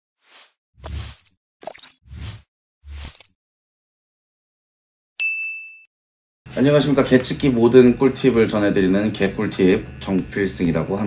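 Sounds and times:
bright ding: 5.2 - 5.9.

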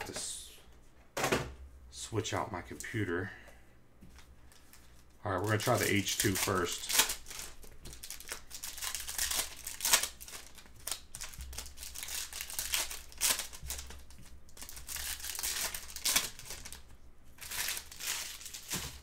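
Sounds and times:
cards being handled: 4.0 - 19.0
foil wrapper crinkling and tearing: 4.5 - 19.0.

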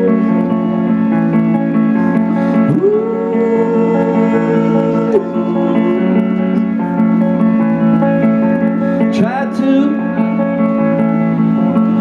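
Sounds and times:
electric guitar strumming: 0.0 - 12.0
indie rock band playing: 0.0 - 12.0.

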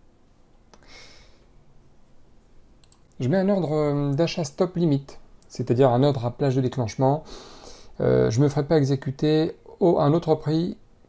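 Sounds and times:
soft hiss: 0.0 - 11.0
computer mouse clicks: 2.8 - 3.2.

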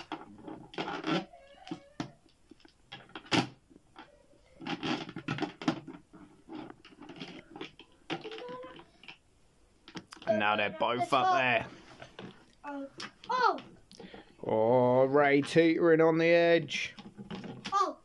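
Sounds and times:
plastic figures knocking: 0.0 - 9.2.

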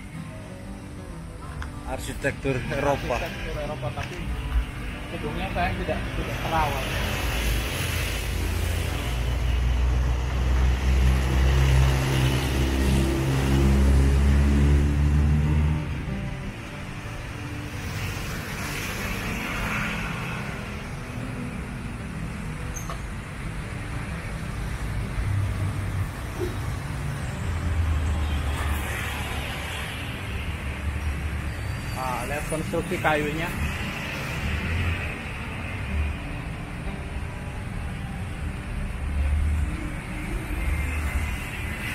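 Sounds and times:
street traffic noise: 0.0 - 41.9.

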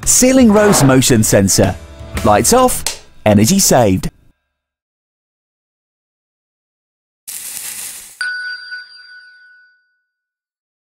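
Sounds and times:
bright bell-like ding: 8.2 - 10.2.

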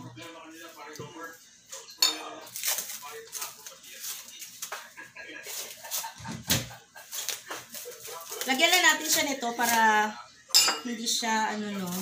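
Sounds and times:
cling wrap crinkling: 2.5 - 6.2, 7.0 - 10.0, 11.8 - 12.0.

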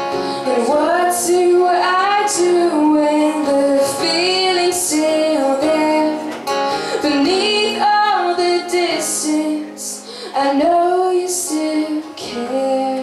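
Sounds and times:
acoustic guitar: 0.0 - 13.0
woman singing: 0.4 - 13.0.

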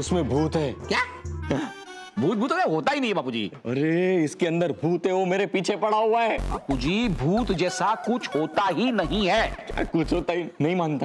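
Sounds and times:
background music: 0.0 - 3.2, 6.4 - 10.7.

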